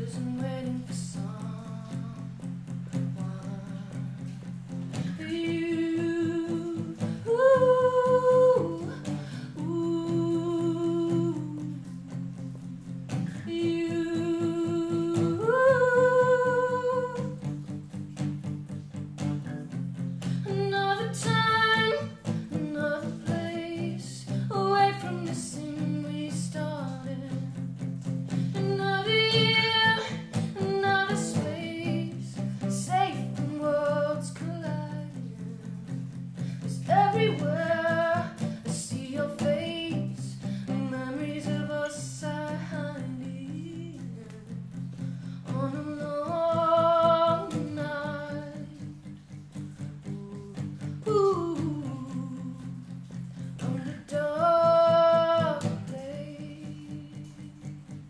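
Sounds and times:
strummed acoustic guitar: 0:00.0 - 0:58.0
woman singing: 0:00.0 - 0:58.0.

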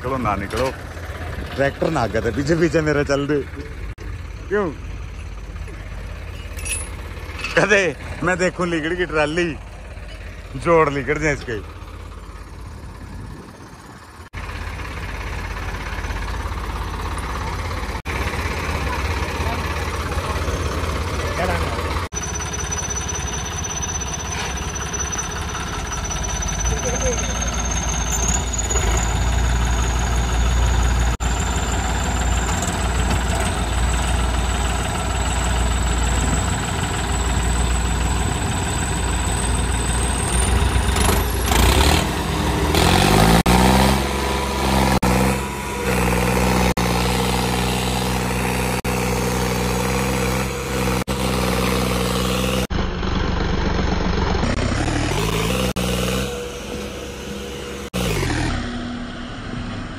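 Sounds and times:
tractor diesel engine straining: 0:00.0 - 0:59.9.

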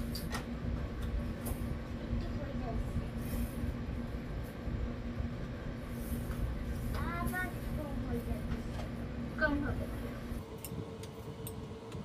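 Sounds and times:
faint pulsing hum: 0:00.0 - 0:12.0
low mechanical rumble: 0:00.0 - 0:12.0.

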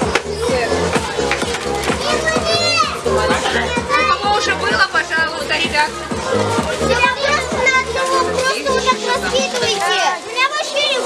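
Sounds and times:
children chattering excitedly: 0:00.0 - 0:11.0.

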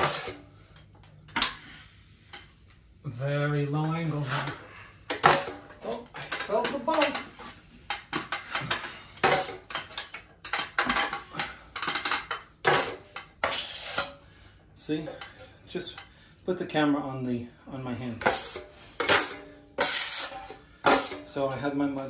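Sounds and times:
drywall knife scraping ceiling: 0:00.0 - 0:00.5, 0:10.6 - 0:14.3, 0:18.2 - 0:21.6.

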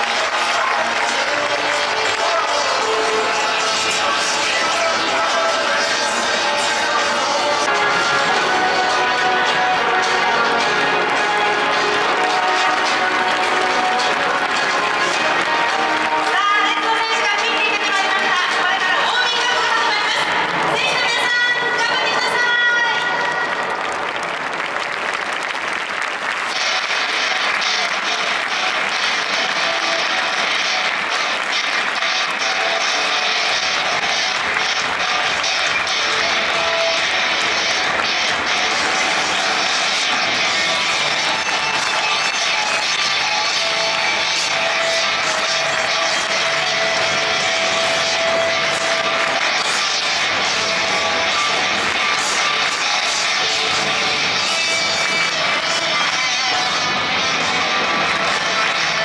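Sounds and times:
music: 0:00.0 - 0:59.0
stadium crowd din: 0:00.0 - 0:59.0.

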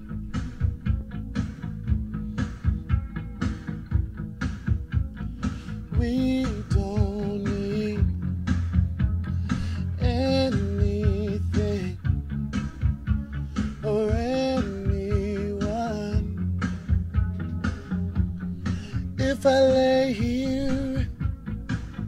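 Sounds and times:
instrumental backing track: 0:00.0 - 0:22.0
man singing: 0:05.9 - 0:08.2, 0:09.6 - 0:12.0, 0:13.8 - 0:16.4, 0:18.8 - 0:21.3.

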